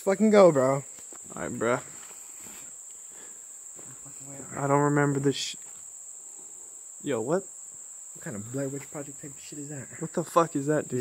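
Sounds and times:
crickets chirping: 0.0 - 11.0.

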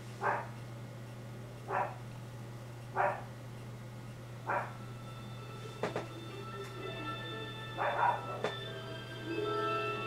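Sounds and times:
steady low hum: 0.0 - 10.0
dog barking: 0.2 - 0.5, 1.7 - 2.0, 2.9 - 3.3, 4.5 - 4.8, 7.8 - 8.5.

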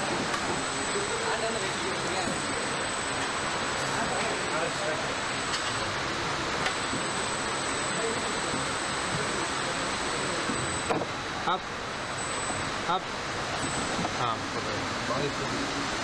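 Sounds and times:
factory hall hum and hiss: 0.0 - 16.0
thin high steady tone: 0.0 - 16.0.

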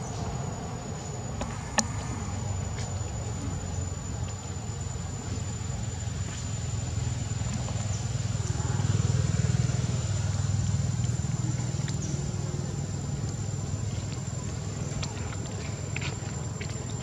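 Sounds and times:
high-pitched whine: 0.0 - 17.0
vehicle engine rumble: 0.0 - 17.0.

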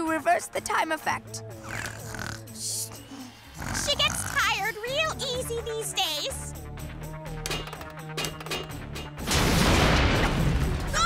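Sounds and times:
light background music: 0.0 - 11.0
woman snoring: 1.5 - 5.0.

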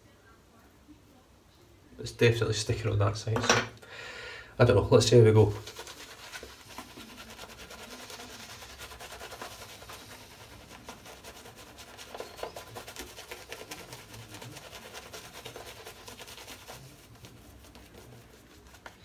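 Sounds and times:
shaving brush lathering face: 5.0 - 19.0.

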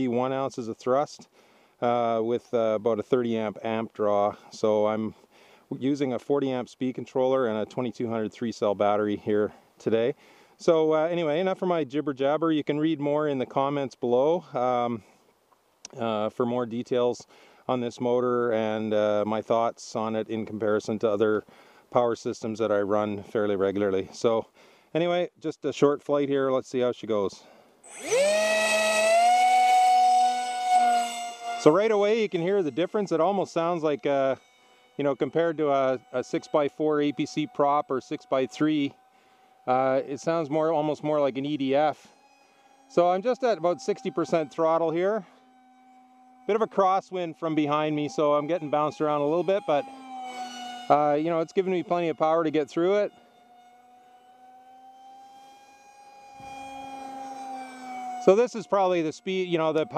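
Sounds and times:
high-pitched electric motor whine: 27.4 - 59.9.

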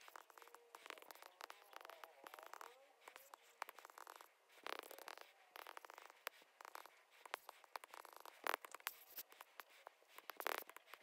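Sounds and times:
stylus scratching and tapping on screen: 0.0 - 11.0.

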